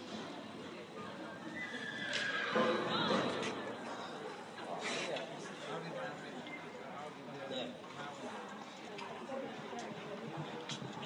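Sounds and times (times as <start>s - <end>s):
indoor arena noise: 0.0s - 11.0s
horse whinnying: 1.6s - 2.9s.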